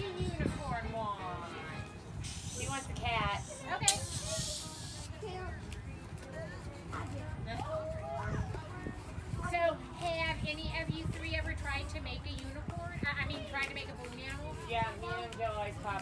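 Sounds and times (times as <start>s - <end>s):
hand pump hissing: 2.2s - 5.2s.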